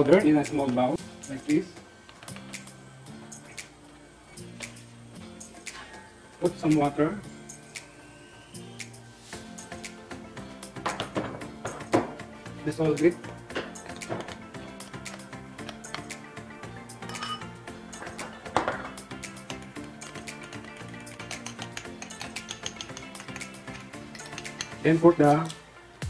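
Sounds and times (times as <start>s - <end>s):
background music: 0.0s - 26.0s
metal spoon clinking on pot: 17.0s - 17.5s, 21.2s - 24.8s.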